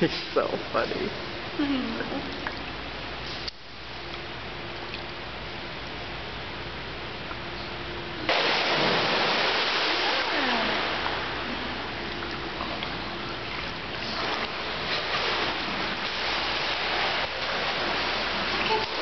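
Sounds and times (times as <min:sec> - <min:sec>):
water rushing and splashing in pool: 0:08.2 - 0:19.0.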